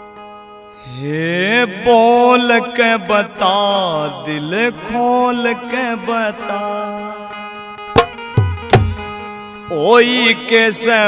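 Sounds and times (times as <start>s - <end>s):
man singing devotional song: 0.8s - 7.8s, 9.6s - 11.0s.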